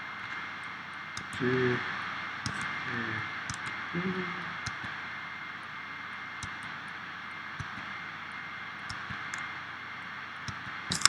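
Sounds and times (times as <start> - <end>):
steady background hiss: 0.0 - 11.0
mouse and keyboard clicks: 2.5 - 2.7.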